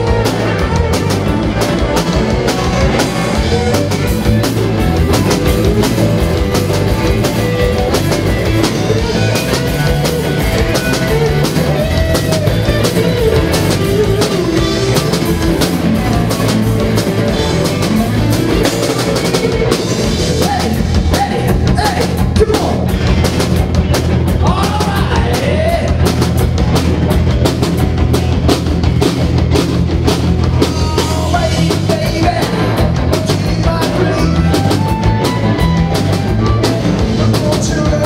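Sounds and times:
driving drum kit: 0.0s - 38.0s.

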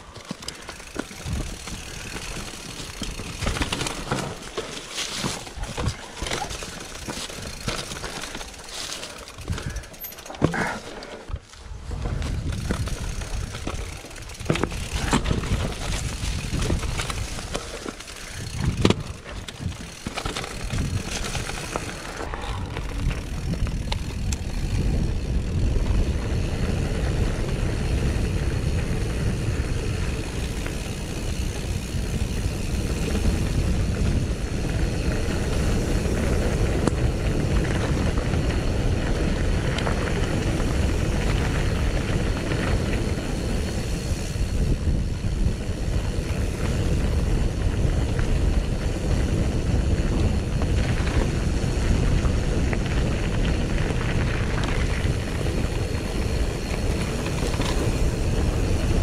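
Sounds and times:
bike knocking over rough ground: 0.0s - 24.8s
tyre and wind noise: 0.0s - 59.0s.

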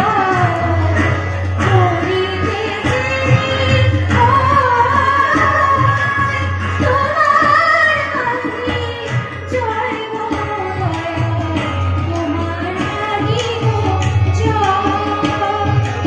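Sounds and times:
tabla: 0.0s - 16.0s
woman singing devotional song: 0.0s - 16.0s.

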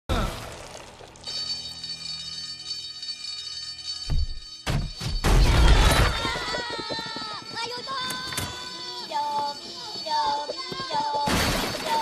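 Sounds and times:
crash of things breaking: 11.2s - 12.0s.

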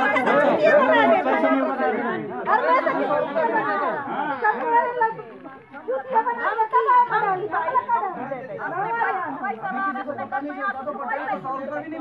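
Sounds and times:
overlapping group conversation: 0.0s - 12.0s.

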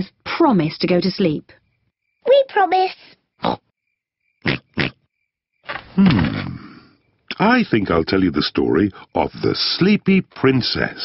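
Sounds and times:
cartoon pig snorting: 4.4s - 5.0s
man talking: 7.3s - 11.0s.

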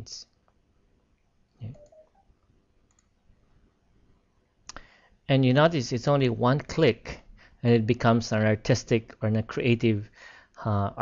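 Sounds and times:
computer mouse click: 2.9s - 3.1s.

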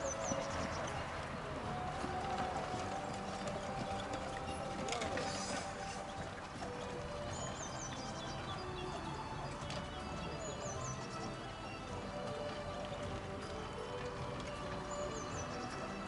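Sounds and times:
background music: 0.0s - 16.0s
horse hoofbeats trotting on grass: 0.0s - 16.0s.

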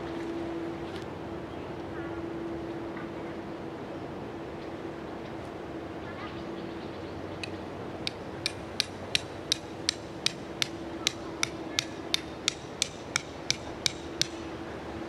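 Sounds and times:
hammer striking tent stake: 8.0s - 14.5s.

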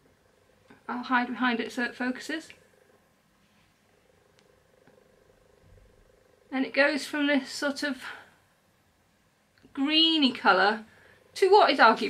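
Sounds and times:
cat purring: 0.1s - 8.4s.

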